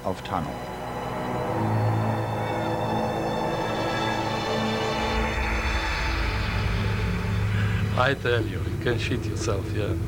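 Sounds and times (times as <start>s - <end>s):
sombre music score: 0.0s - 10.0s.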